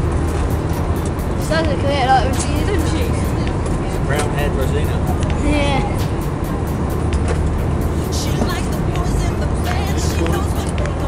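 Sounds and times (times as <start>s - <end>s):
airliner cabin drone: 0.0s - 11.0s.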